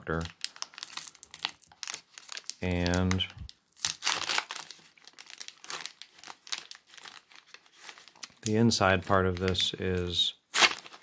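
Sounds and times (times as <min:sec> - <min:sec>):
packaging crinkling: 0:00.1 - 0:11.0.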